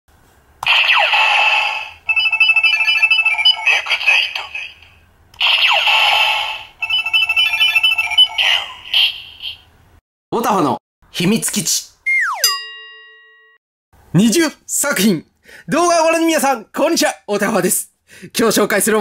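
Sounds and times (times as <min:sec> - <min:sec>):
toy electronic voice call: 0:01.0 - 0:04.9, 0:05.7 - 0:09.6.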